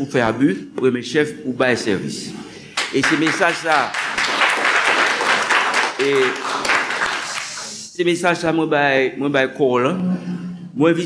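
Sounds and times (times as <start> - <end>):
audience applauding: 2.8 - 7.8.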